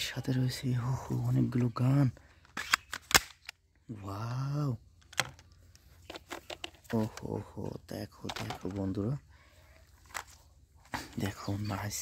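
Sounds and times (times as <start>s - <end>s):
toy gun plastic clicks: 2.4s - 3.6s.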